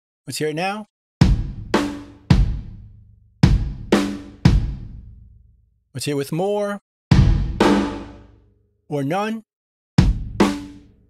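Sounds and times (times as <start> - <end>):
drum hits with reverb: 1.2 - 2.8, 3.4 - 5.0, 7.1 - 8.2, 10.0 - 10.8.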